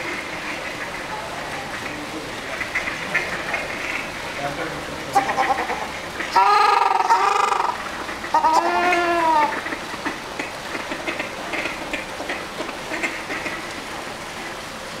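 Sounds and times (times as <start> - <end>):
ducks honking: 0.0 - 14.7.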